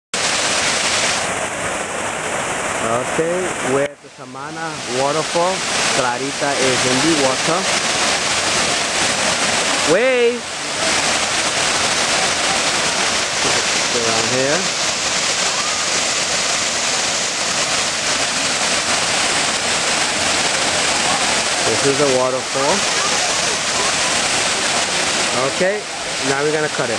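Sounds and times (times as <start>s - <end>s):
waterfall rushing over rocks: 0.1s - 26.9s.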